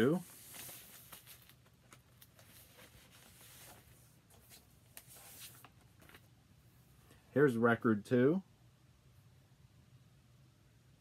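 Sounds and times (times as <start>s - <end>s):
vinyl record rustling and tapping: 0.0s - 6.3s.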